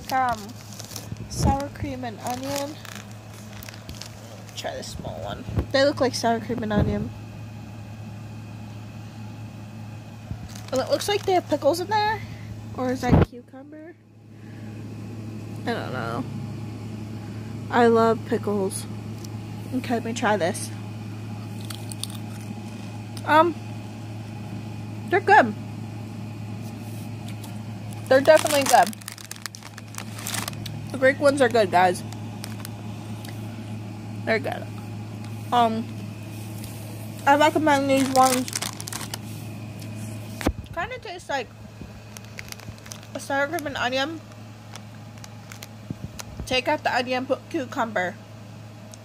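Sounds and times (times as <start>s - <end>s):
chip bag crinkling: 0.0s - 5.0s, 10.3s - 11.9s, 21.4s - 23.2s, 27.1s - 33.4s, 35.9s - 40.5s, 42.0s - 43.7s, 44.3s - 46.5s
low background hum: 0.0s - 49.0s.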